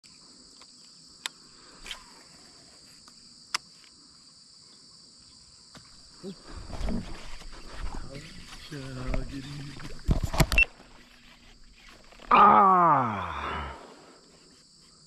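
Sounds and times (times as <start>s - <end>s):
insects chorus: 0.0s - 15.0s.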